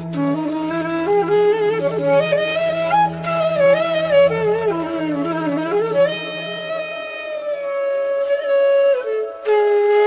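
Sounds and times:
flute holding long note: 0.0s - 10.0s.

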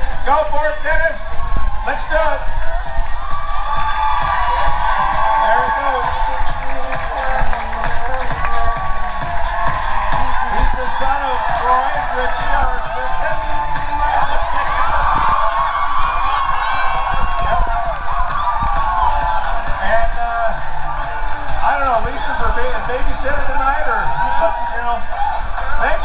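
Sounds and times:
music over a pa system: 0.0s - 26.0s
audience cheering and whooping: 0.1s - 26.0s
voices shouting: 0.8s - 22.7s.

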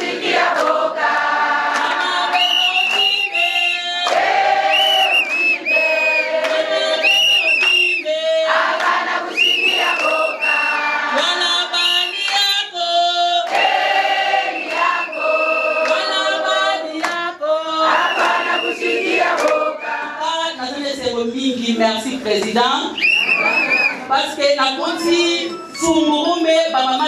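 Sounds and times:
women singing in chorus: 0.0s - 20.6s.

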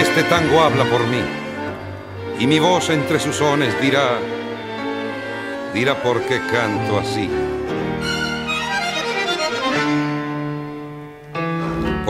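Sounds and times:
bandoneon tango phrase: 0.0s - 12.0s.

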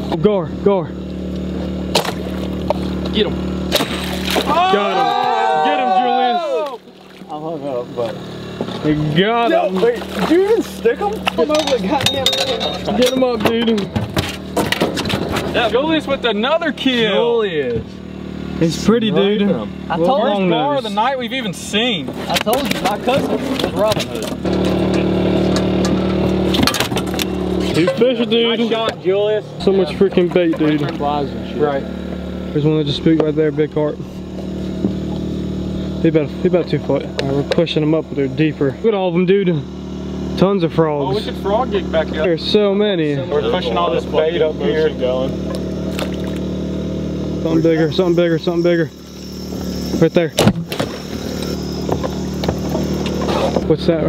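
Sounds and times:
boat motor droning: 0.0s - 54.0s.

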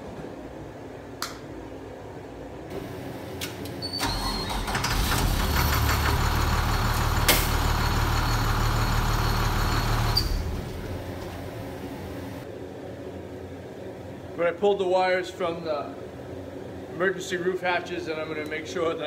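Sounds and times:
bus engine running: 4.1s - 12.4s.

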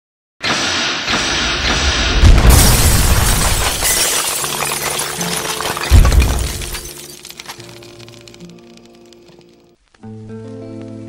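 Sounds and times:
dense rushing noise: 0.5s - 3.8s.

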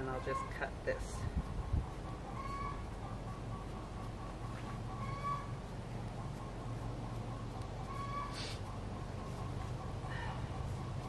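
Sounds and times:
steady low hum: 0.0s - 11.0s
animal calling: 2.2s - 11.0s.

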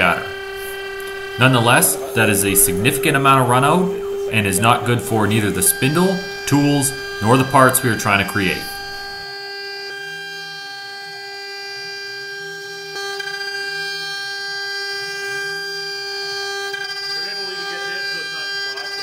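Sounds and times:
end mill cutting metal: 0.0s - 19.0s
milling spindle high whine: 0.0s - 19.0s.

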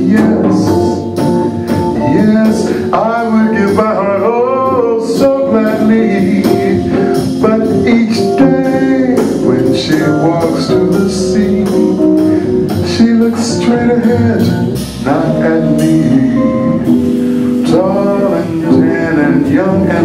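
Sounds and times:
drums: 0.0s - 20.0s
person singing: 0.0s - 20.0s.

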